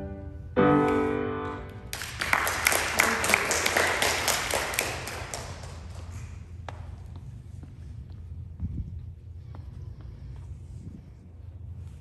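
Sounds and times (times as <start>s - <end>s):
audience applauding: 1.9s - 6.3s.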